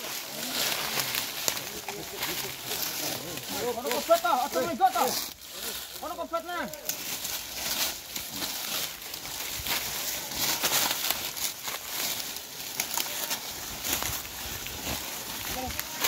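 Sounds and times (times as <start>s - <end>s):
footsteps crunching dry leaves: 0.0s - 16.0s.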